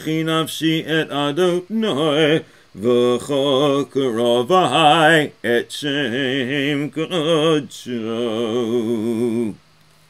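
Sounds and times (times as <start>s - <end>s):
man chanting prayers: 0.0s - 9.6s.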